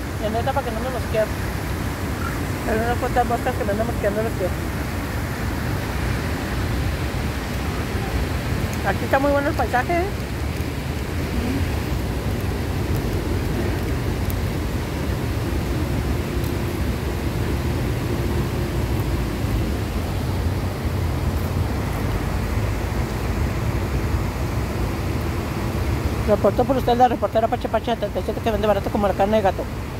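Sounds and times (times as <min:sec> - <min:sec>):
water rushing over weir: 0:00.0 - 0:29.9.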